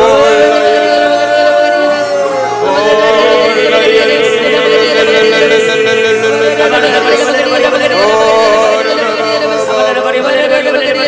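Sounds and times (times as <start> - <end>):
background music: 0.0 - 11.0
person chanting syllables: 0.0 - 11.0.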